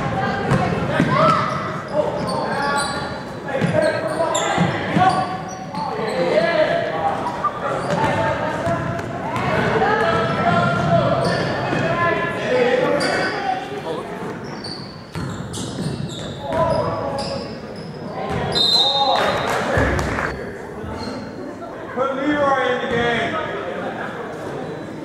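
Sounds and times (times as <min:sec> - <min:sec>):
sneakers squeaking: 0:00.0 - 0:12.1, 0:12.8 - 0:21.4
referee whistle: 0:18.5 - 0:19.2.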